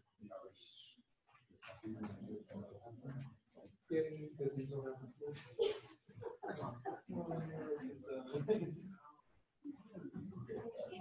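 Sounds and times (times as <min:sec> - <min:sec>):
quiet indistinct talk: 0:00.1 - 0:11.0.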